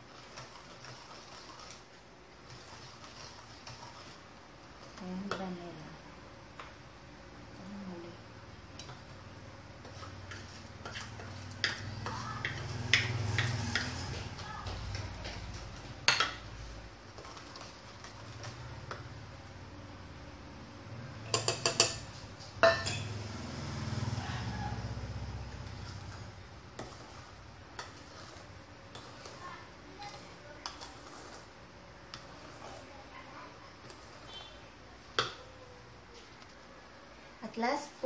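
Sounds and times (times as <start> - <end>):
wooden spoon scraping metal bowl: 0.0 - 5.6, 9.8 - 16.5, 25.4 - 35.4
spoon clinking against bowl: 21.3 - 23.2.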